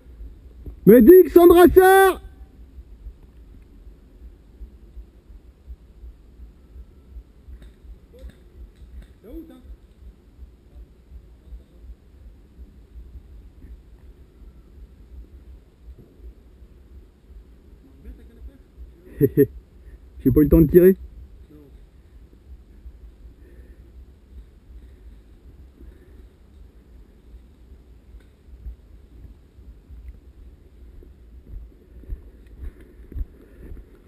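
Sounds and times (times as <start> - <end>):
rustling vegetation: 2.3 - 34.0.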